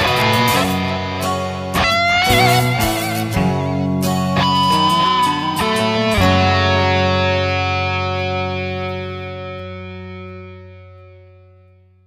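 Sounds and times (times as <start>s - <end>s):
distorted electric guitar chord ringing: 0.0s - 11.8s.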